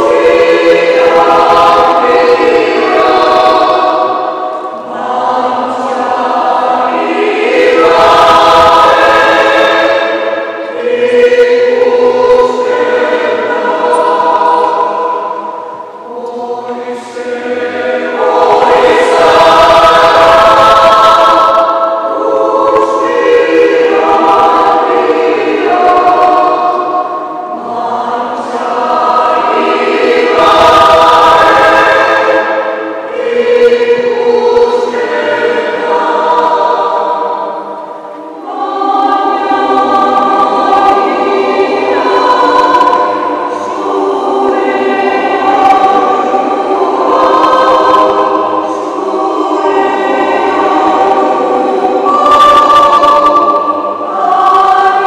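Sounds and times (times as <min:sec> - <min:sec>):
mixed choir singing: 0:00.0 - 0:55.0.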